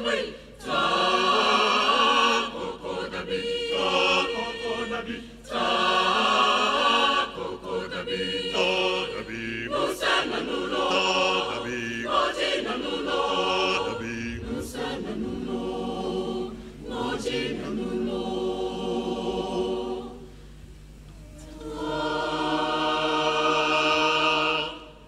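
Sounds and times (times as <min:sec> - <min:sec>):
mixed choir singing in harmony: 0:00.0 - 0:20.3, 0:21.4 - 0:25.0.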